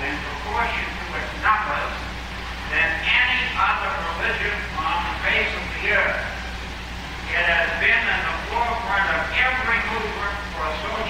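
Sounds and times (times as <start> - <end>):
indistinct speech: 0.0 - 2.0, 2.7 - 6.4, 7.3 - 11.0
low electrical hum: 0.0 - 11.0.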